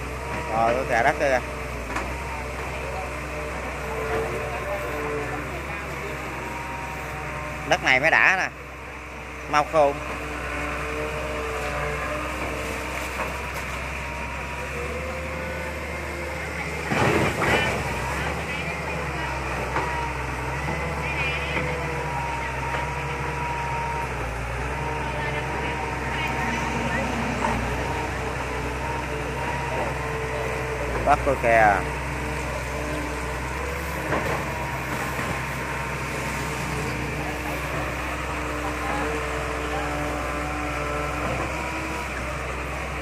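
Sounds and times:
diesel engine humming: 0.0 - 43.0.

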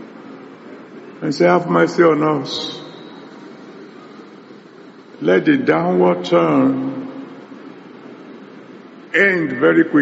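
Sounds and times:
room noise hiss: 0.0 - 10.0
man's amplified voice: 1.2 - 3.1, 5.2 - 7.4, 9.1 - 10.0.

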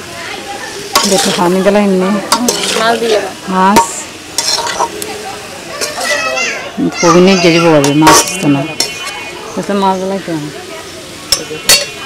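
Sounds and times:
children chattering: 0.0 - 12.0
metal spatula scraping a wok: 0.9 - 4.9, 7.8 - 9.2.

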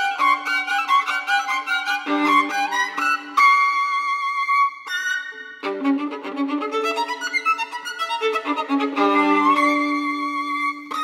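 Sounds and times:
solo violin: 0.0 - 11.0.

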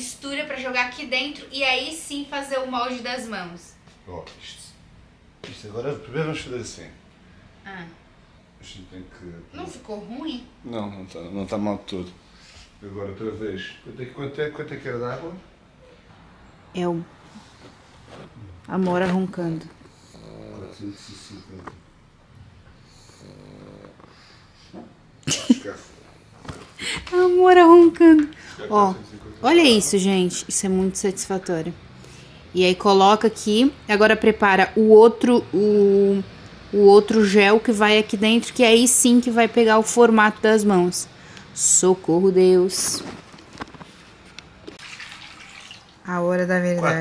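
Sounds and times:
dog snoring: 19.6 - 21.8, 22.5 - 24.8
water pouring into glass bowl: 44.8 - 46.1.

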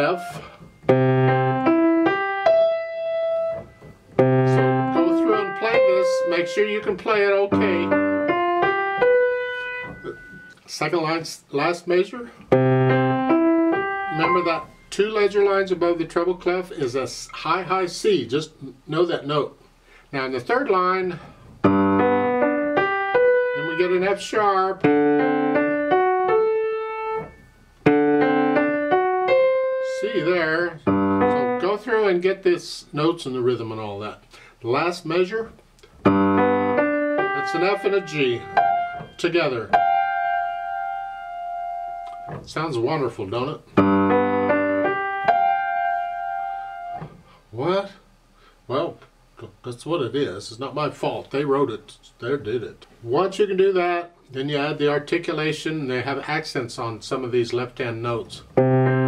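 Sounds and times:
grand piano broken chord: 0.0 - 10.6, 12.5 - 15.7, 21.6 - 24.2, 24.8 - 31.8, 36.0 - 42.9, 43.8 - 47.0, 58.5 - 59.0.

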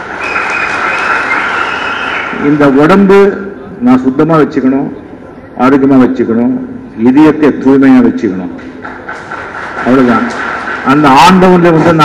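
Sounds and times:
audience cheering: 0.0 - 2.6
high whistles: 0.1 - 2.6.

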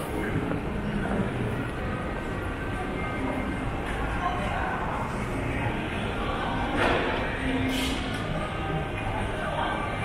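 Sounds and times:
faint scattered voices: 0.0 - 10.0.

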